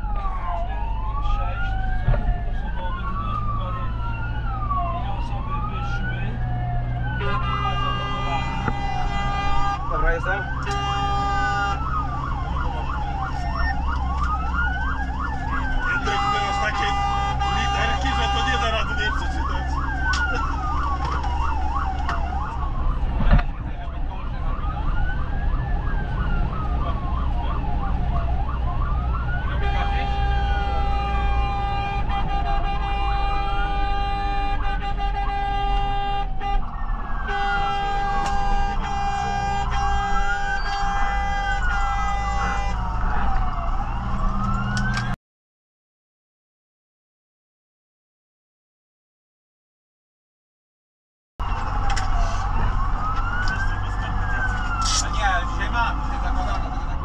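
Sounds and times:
fast siren yelp: 0.0 - 45.2, 51.4 - 57.0
fire engine siren wailing: 0.0 - 45.2, 51.4 - 57.0
horn blasts: 7.2 - 11.9, 16.0 - 18.9, 29.6 - 36.7, 37.3 - 42.9.

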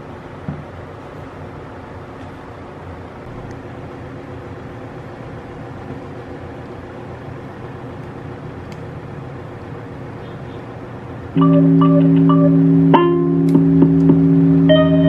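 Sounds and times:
low mechanical hum: 0.0 - 15.0.

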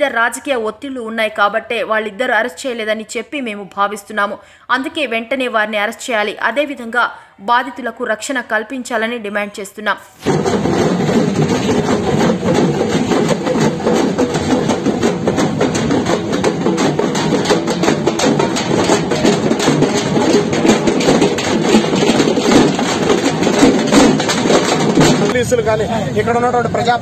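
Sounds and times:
frame drums beaten together: 10.2 - 25.4.

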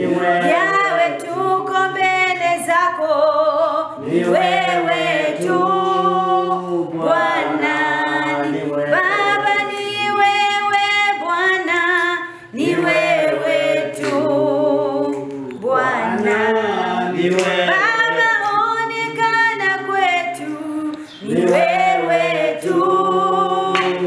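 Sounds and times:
woman singing unaccompanied: 0.2 - 4.0, 4.6 - 16.5, 17.7 - 24.0.

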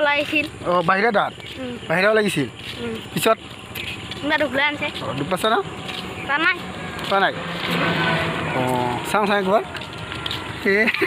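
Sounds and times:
vehicle driving past: 4.0 - 11.0.

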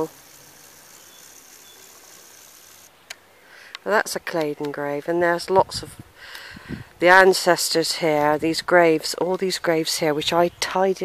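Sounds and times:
woman's voice: 3.8 - 6.0, 7.0 - 11.0.

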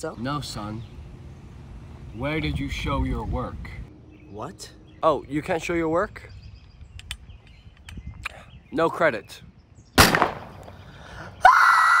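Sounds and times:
pistol shot: 10.0 - 10.6
boy screaming: 11.4 - 12.0.

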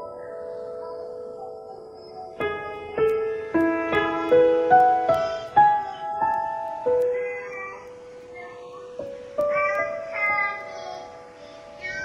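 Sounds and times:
faint higher keyboard notes: 0.0 - 12.0.

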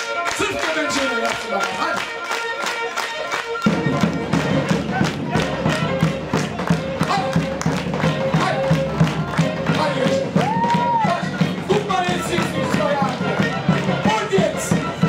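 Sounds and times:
bowed fiddle fast melody: 0.0 - 15.0.

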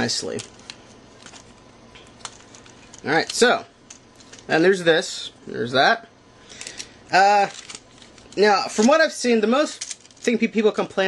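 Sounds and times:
plastic toy handling: 0.2 - 4.5, 6.6 - 10.4.

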